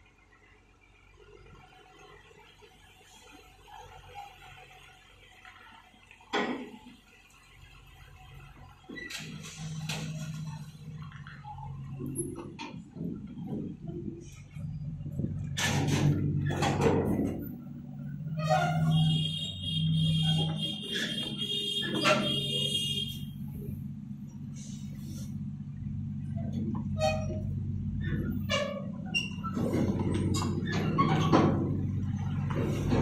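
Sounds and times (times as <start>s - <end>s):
diesel truck engine droning: 0.0s - 33.0s.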